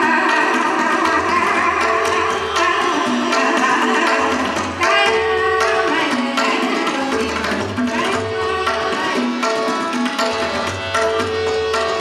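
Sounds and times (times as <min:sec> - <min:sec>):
tabla: 0:00.0 - 0:12.0.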